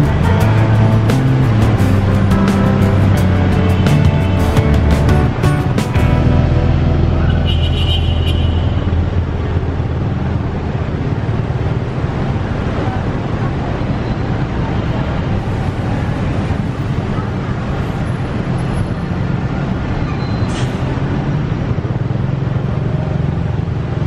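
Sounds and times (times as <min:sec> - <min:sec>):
background music with a beat: 0:00.0 - 0:07.7
motorbike engine and traffic rumble: 0:00.0 - 0:24.0.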